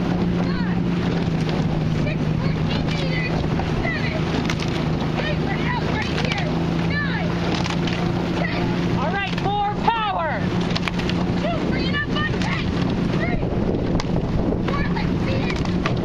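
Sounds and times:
oars splashing: 0.0s - 16.0s
outboard motor running: 0.0s - 16.0s
wind on microphone: 0.0s - 16.0s.

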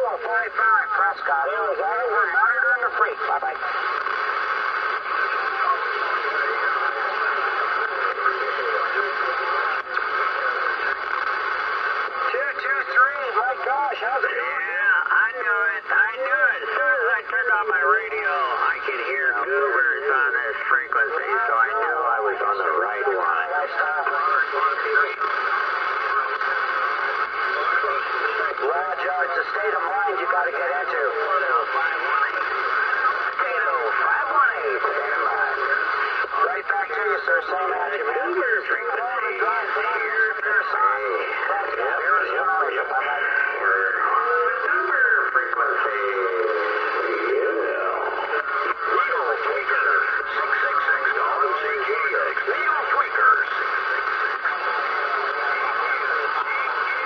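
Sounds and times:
garbled radio voices: 0.0s - 57.0s
radio band hiss: 0.0s - 57.0s.

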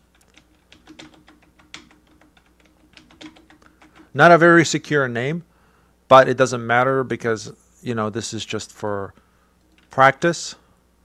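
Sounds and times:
typing on computer keyboard: 0.0s - 4.2s.

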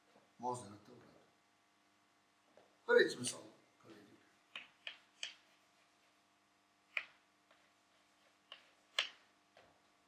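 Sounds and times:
chalk clicking on a blackboard: 4.5s - 5.7s, 6.9s - 9.3s.

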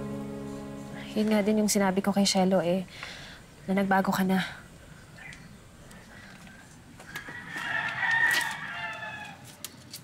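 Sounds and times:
rooster crowing: 7.1s - 9.5s.

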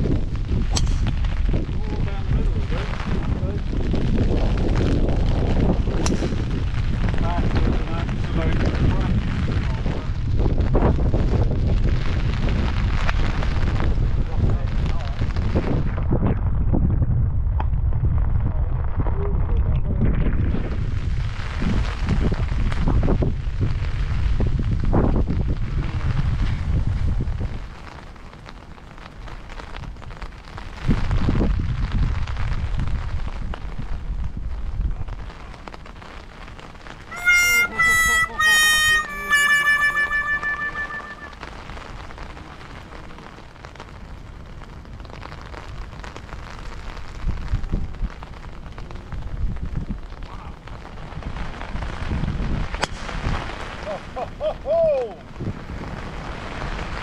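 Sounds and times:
wind buffeting microphone: 0.0s - 38.3s, 40.8s - 57.0s.

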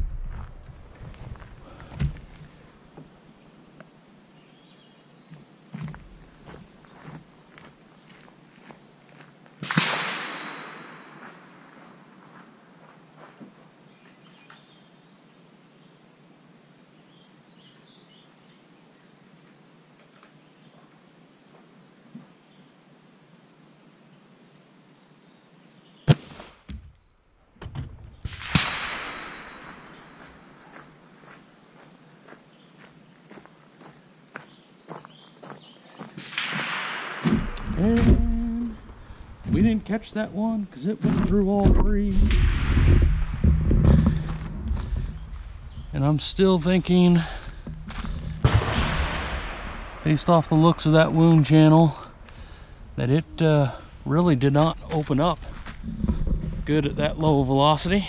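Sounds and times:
rifle gunshot reports: 9.6s - 11.1s, 28.2s - 30.2s, 36.2s - 39.4s, 42.1s - 44.4s, 48.2s - 51.0s.

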